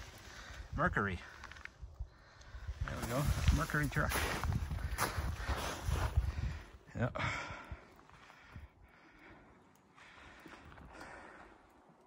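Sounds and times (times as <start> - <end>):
footsteps crunching in snow: 2.9 - 6.4.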